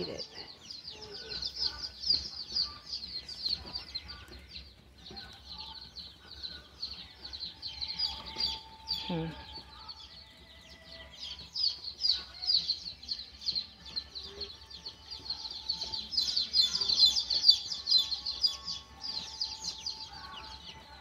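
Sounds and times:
chicks peeping: 0.0 - 21.0.

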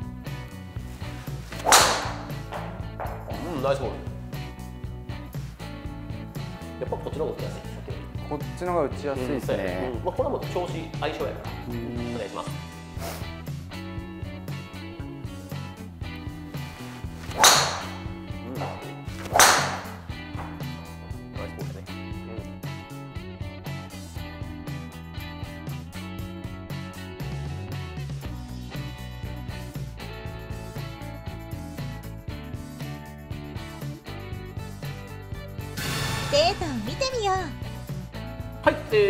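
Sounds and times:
background music: 0.0 - 39.0
golf club striking ball: 1.5 - 3.3, 17.2 - 20.7.

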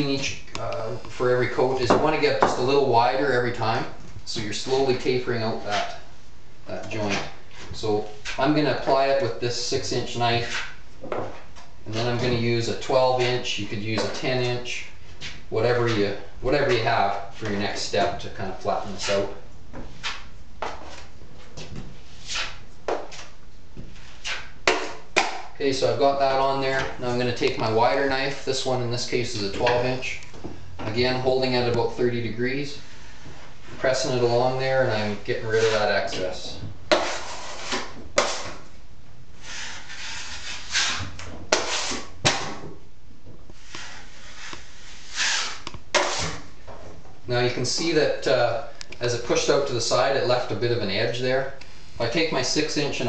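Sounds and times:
drywall knife scraping compound: 10.3 - 10.8, 18.8 - 19.4, 22.0 - 23.3, 23.9 - 25.5, 35.4 - 36.2, 36.9 - 38.7, 39.4 - 42.7, 43.5 - 46.5.

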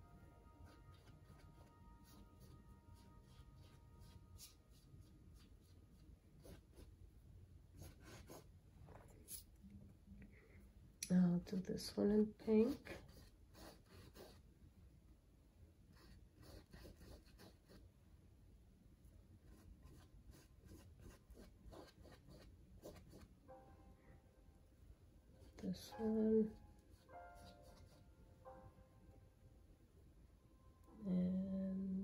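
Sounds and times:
paintbrush scratching on canvas: 0.6 - 6.9, 12.5 - 14.4.

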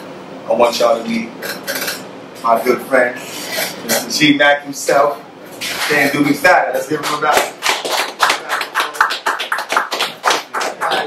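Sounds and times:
people clapping: 6.9 - 11.0.

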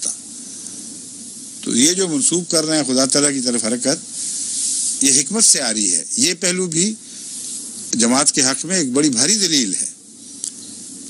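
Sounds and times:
steady high hiss: 0.0 - 11.0
man speaking: 1.6 - 4.1, 5.0 - 7.0, 7.9 - 10.0.

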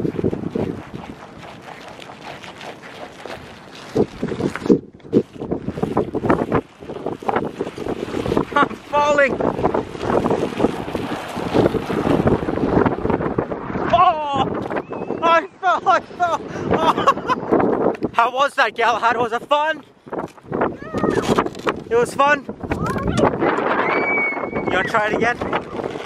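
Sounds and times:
footsteps crunching on icy snow: 0.0 - 6.6
wind on microphone: 0.0 - 26.0.

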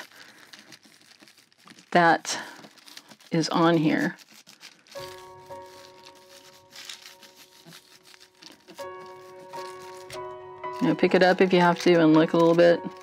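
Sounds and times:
paper crinkling rustle: 0.0 - 13.0
quiet background music: 2.9 - 13.0.

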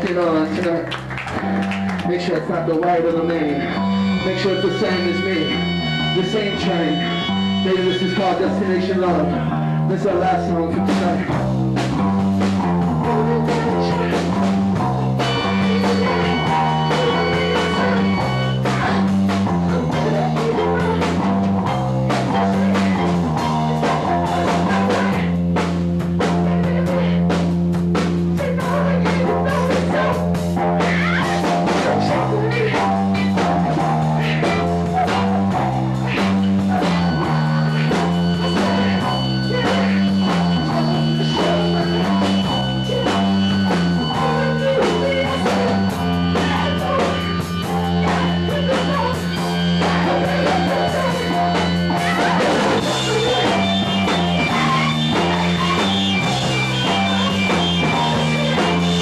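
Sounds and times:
bass guitar line: 0.0 - 59.0
drums: 0.0 - 59.0
electric guitar: 0.0 - 59.0
high held tone: 2.0 - 27.5, 28.4 - 59.0.

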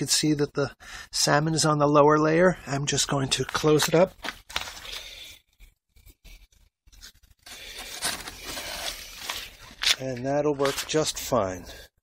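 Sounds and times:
cardboard scraping and rubbing: 6.0 - 11.4.

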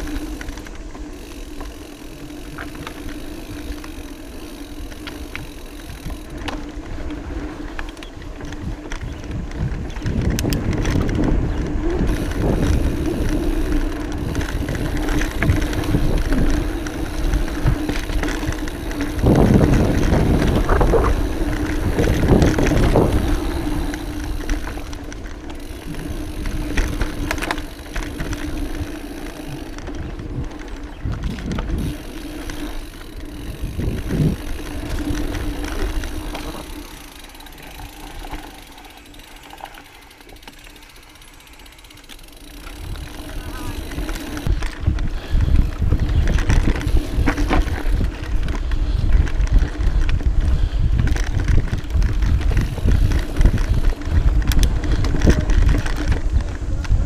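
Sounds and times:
wind on microphone: 0.0 - 38.8, 42.6 - 57.0
bike rattling over bumps: 0.0 - 57.0
bike tyres on dirt: 0.0 - 57.0.

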